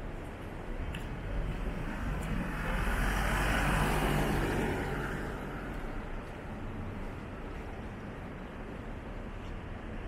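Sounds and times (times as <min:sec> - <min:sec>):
car passing by: 0:01.8 - 0:05.8.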